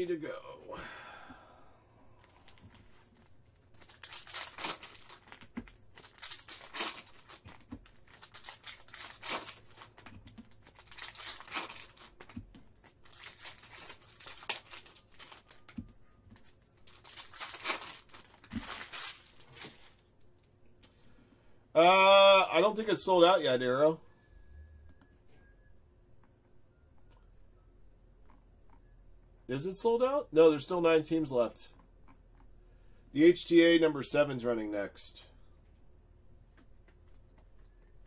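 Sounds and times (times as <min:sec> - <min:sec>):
foil wrappers ripping: 0:03.8 - 0:15.7, 0:16.8 - 0:20.0.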